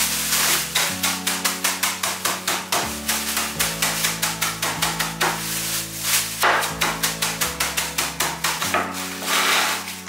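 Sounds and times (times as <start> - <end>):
cornflakes crunching: 0.0 - 10.0.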